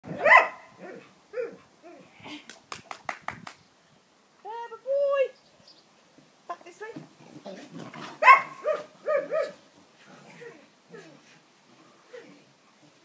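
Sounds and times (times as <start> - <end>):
dog barking: 0.2 - 0.7, 8.2 - 9.6.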